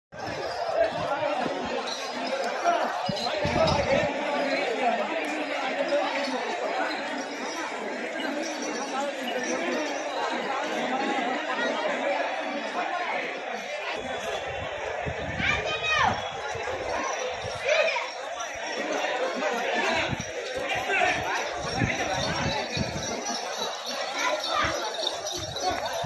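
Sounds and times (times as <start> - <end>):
men talking and calling out: 0.2 - 26.0.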